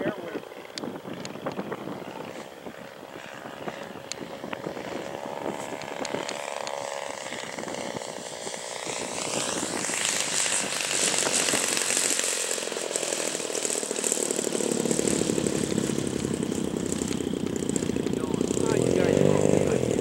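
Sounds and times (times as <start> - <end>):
model plane engine buzzing: 0.0 - 20.0.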